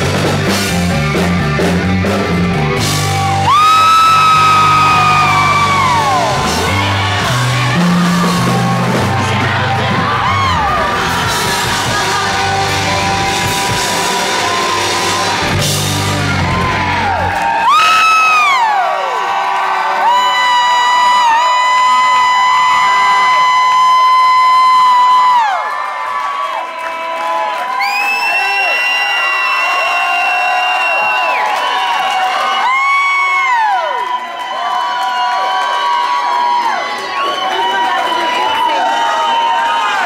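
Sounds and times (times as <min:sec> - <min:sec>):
rock song final chord: 0:00.0 - 0:17.3
audience cheering and whooping: 0:02.7 - 0:40.0.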